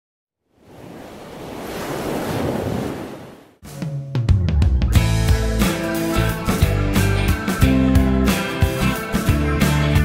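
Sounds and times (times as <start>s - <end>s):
music with drums and guitar: 3.7s - 10.0s.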